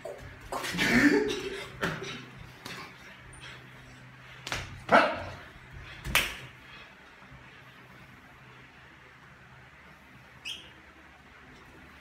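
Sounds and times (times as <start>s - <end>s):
sharp slap: 6.0s - 6.5s.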